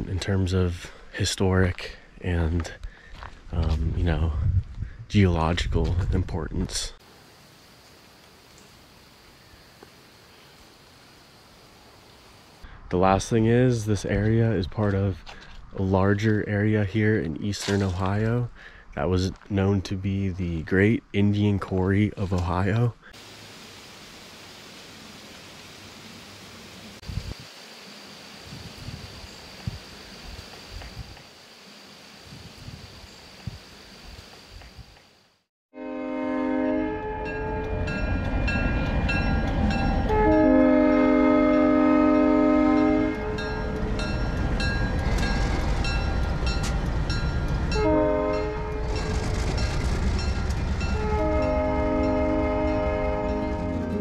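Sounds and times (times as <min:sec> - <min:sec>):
locomotive horn blasts: 0:35.7 - 0:38.0, 0:39.9 - 0:43.7, 0:47.7 - 0:49.2, 0:50.9 - 0:54.0
crossing bell ringing: 0:37.0 - 0:41.7, 0:42.6 - 0:54.0
locomotive engine rumbling: 0:37.0 - 0:54.0.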